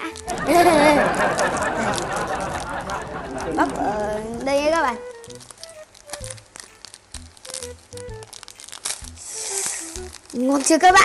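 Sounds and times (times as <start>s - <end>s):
plastic wrapper crinkling and tearing: 0.0s - 11.0s
quiet background music: 0.0s - 11.0s.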